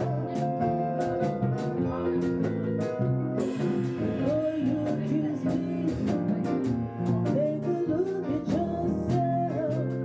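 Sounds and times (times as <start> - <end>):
drums: 0.0 - 10.0
electric bass: 0.0 - 10.0.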